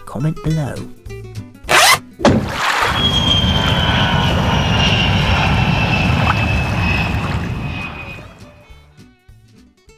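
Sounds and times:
airplane flying past: 2.3s - 8.8s.

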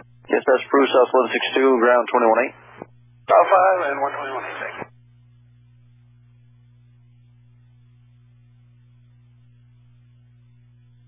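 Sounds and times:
low electrical hum: 0.0s - 11.0s
voice over radio: 0.3s - 4.9s.

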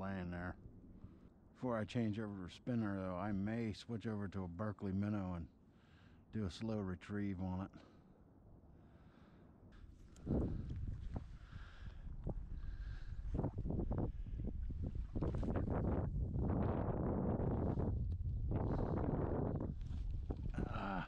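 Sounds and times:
wind rumbling on microphone: 9.8s - 21.0s.

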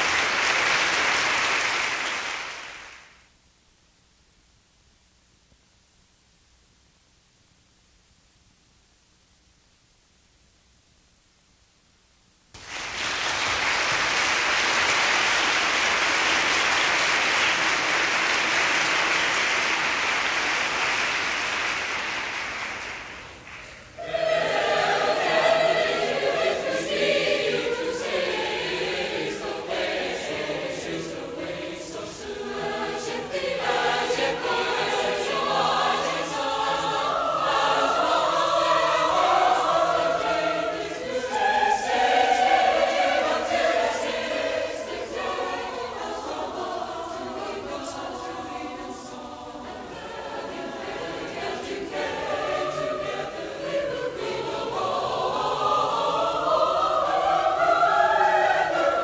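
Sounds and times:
mixed choir singing: 13.0s - 22.9s, 24.0s - 59.0s.

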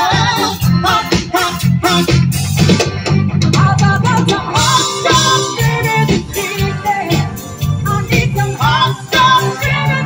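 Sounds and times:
bass line: 0.0s - 10.0s
electric guitar: 0.0s - 10.0s
person singing: 3.4s - 10.0s.

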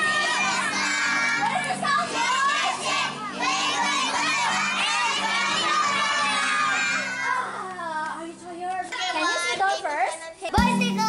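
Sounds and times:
children shouting: 0.0s - 7.9s
music playing: 10.6s - 11.0s.

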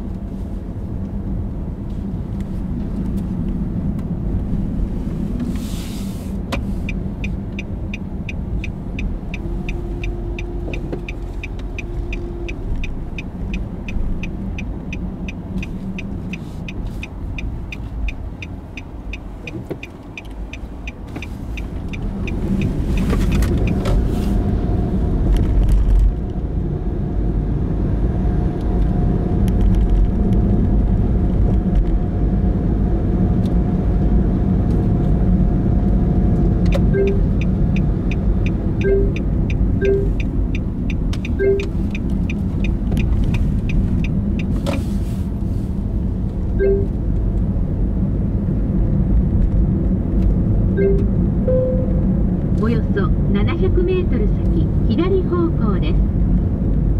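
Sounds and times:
car engine and road rumble: 0.0s - 56.9s
turn signal ticking: 6.4s - 25.3s, 35.8s - 56.9s.

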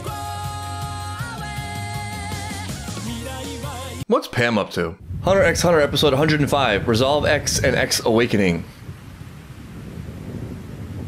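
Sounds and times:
wind rushing: 5.0s - 11.0s.

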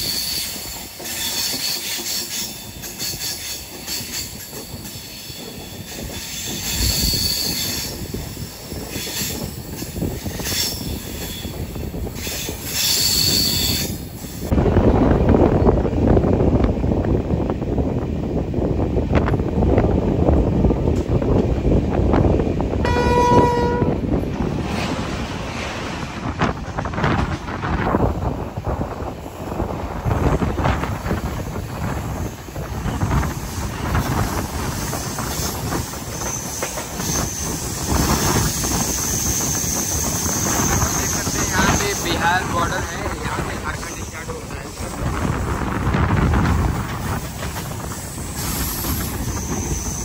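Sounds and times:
train wheels rumbling on rail: 0.0s - 50.0s
train horn: 22.8s - 24.0s.

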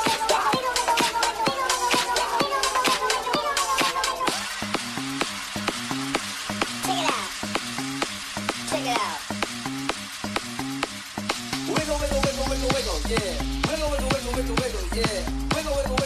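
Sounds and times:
fast ticking percussion: 0.0s - 16.0s
repeating bass riff: 11.4s - 16.0s
kick drum: 11.8s - 16.0s.

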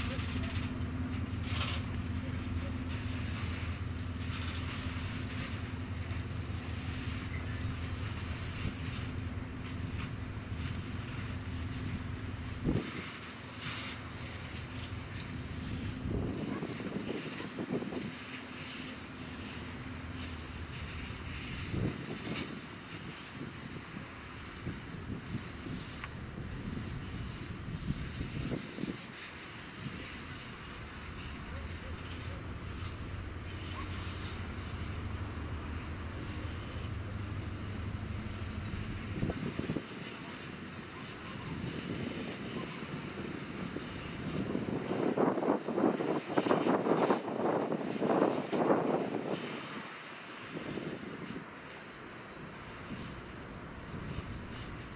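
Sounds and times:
diesel locomotive droning: 0.0s - 54.9s.

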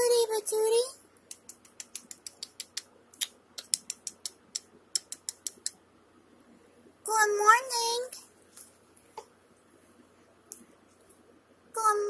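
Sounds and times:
rapid sharp clicks: 1.2s - 5.8s.

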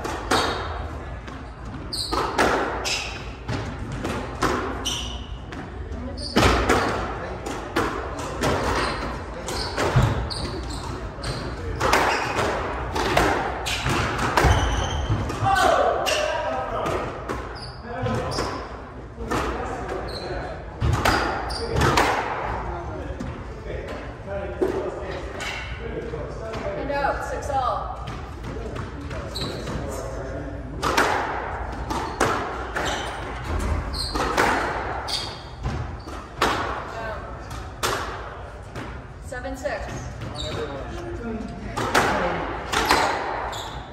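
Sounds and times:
squash ball struck by rackets: 0.0s - 0.8s, 2.1s - 4.8s, 11.7s - 16.2s, 30.8s - 36.9s, 37.5s - 38.9s, 41.7s - 43.5s
ball hitting court walls: 0.0s - 18.6s, 30.8s - 39.0s, 41.7s - 43.9s
shoes squeaking on hardwood: 32.0s - 36.3s, 40.2s - 40.9s, 43.0s - 43.9s.

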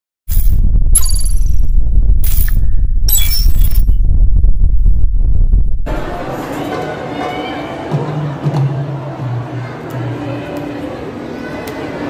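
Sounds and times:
deep bass rumble: 0.2s - 6.3s.

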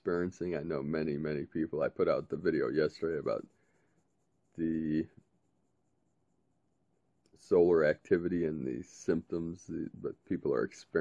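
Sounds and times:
man speaking: 0.0s - 3.6s, 4.6s - 5.2s, 7.4s - 11.0s
faint room noise: 0.0s - 11.0s.

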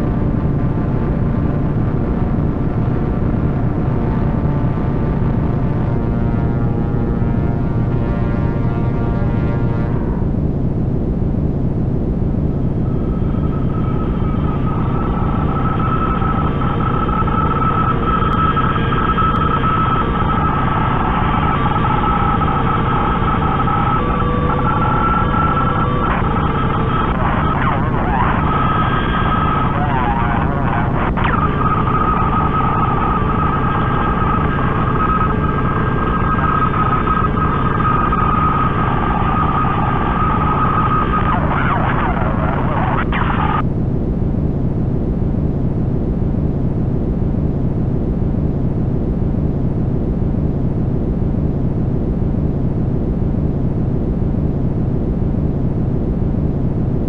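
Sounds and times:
dense noise drone: 0.0s - 57.0s
sustained high tone: 12.8s - 43.6s
wavering gliding tones: 12.8s - 43.6s.

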